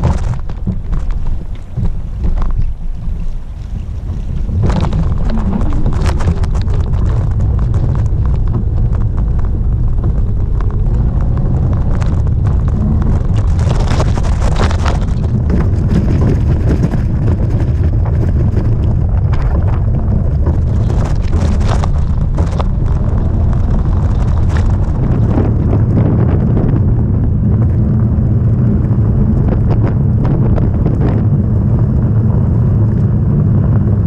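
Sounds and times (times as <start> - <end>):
knocks and rattles from bumps: 0.0 - 10.8
bike riding on gravel: 0.0 - 33.2
wind buffeting microphone: 0.0 - 34.0.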